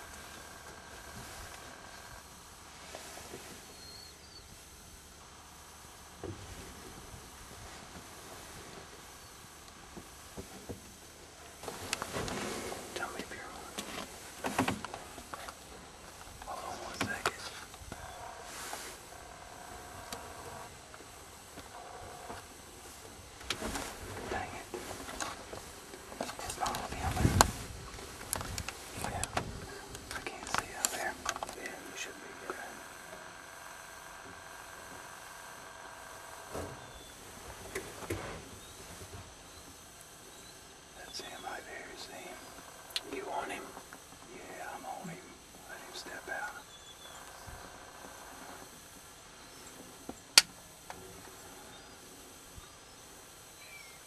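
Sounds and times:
faint steady tone: 0.0s - 54.0s
people whispering: 12.9s - 14.1s, 16.3s - 20.8s, 23.9s - 25.2s, 26.2s - 27.7s, 28.5s - 33.1s, 41.0s - 46.7s.

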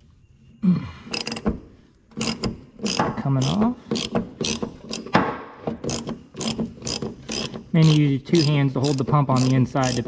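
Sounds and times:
socket ratchet clicking: 1.1s - 1.5s, 2.1s - 5.2s, 5.8s - 10.0s.

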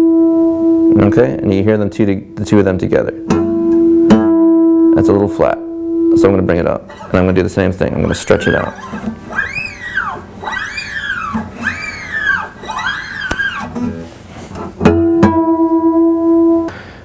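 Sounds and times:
guitar string stretched pitch bending: 6.0s - 16.7s.

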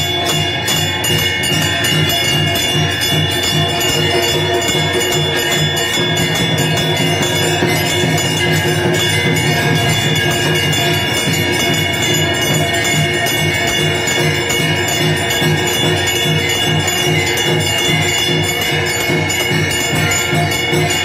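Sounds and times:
fast steady drumbeat: 0.0s - 21.0s
temple bells ringing: 0.0s - 21.0s.

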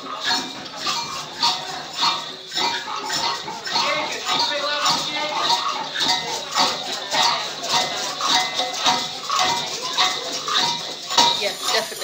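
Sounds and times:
hand drums beating: 0.0s - 12.0s
shakers rattling: 0.0s - 12.0s.

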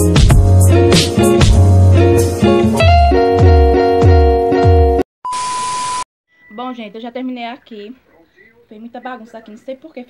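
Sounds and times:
woman speaking: 6.5s - 8.1s, 8.7s - 10.0s.

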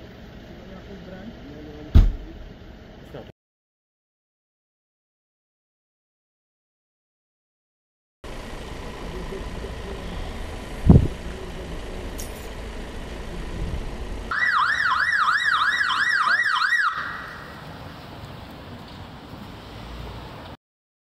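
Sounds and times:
loud thump: 1.9s - 2.4s, 10.8s - 11.2s
street noise: 8.2s - 20.6s
police siren yelping: 14.3s - 17.6s.

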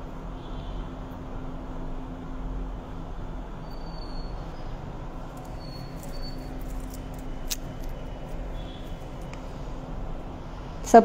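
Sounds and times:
faint high-pitched chirps: 3.6s - 4.7s, 5.5s - 6.7s.

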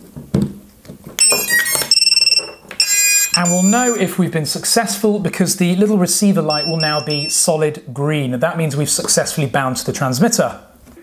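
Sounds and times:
high electronic beeps: 1.2s - 4.1s, 6.5s - 7.6s.

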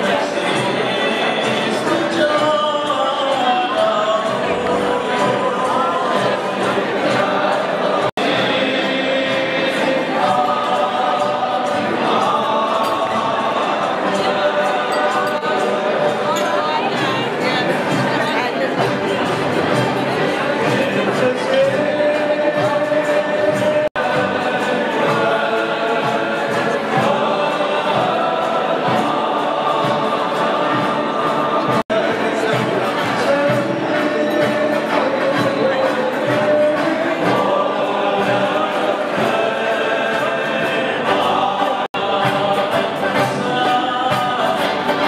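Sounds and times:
choir singing: 0.0s - 45.0s.

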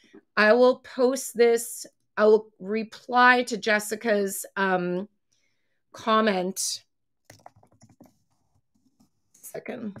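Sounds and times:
typing on computer keyboard: 7.3s - 8.2s.

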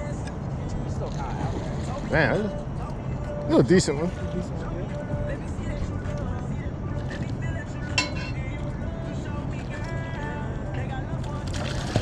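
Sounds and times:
faint voices talking: 0.6s - 8.5s.

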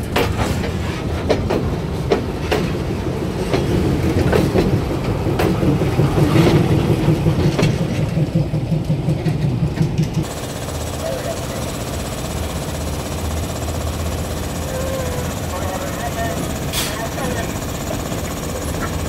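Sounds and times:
railway wagons rumbling: 0.0s - 19.0s
wheels clicking over rail joints: 0.0s - 19.0s.

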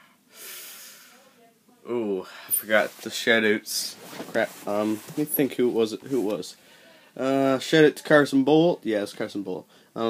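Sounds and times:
person speaking: 1.8s - 10.0s.

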